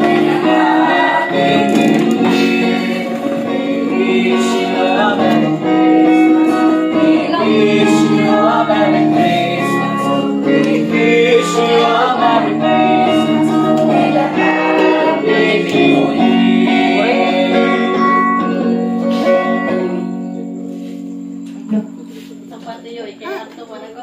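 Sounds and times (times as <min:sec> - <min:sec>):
young voices singing together: 0:00.0 - 0:21.0
strummed small guitar: 0:00.0 - 0:23.7.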